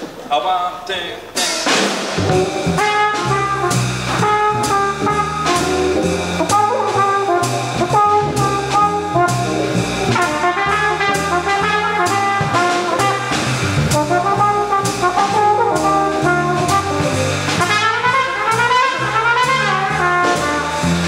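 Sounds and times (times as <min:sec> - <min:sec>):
drum kit: 0:01.2 - 0:21.0
walking double bass: 0:02.1 - 0:21.0
trumpet playing: 0:02.2 - 0:21.0
valve trombone playing: 0:02.2 - 0:21.0.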